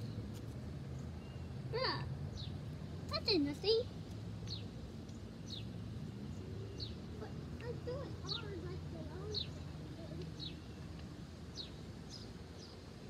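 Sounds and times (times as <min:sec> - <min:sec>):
low outdoor hum: 0:00.0 - 0:13.0
bird chirping: 0:00.9 - 0:01.6, 0:02.3 - 0:03.4, 0:04.4 - 0:13.0.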